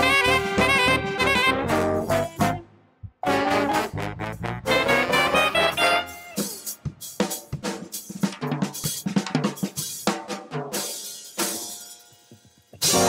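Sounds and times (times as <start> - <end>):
keyboard and bass notes: 0.0 - 6.5, 12.8 - 13.0
drum kit playing: 0.0 - 13.0
cymbal and drum accent: 3.2 - 13.0.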